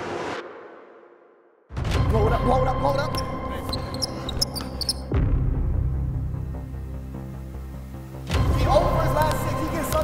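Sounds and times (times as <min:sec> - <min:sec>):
low music: 0:01.7 - 0:10.0
sneaker squeaks: 0:03.0 - 0:05.1.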